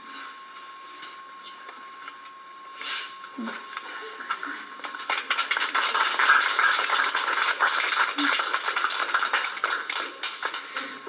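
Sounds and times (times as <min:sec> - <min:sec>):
audience applauding: 0:04.8 - 0:11.0.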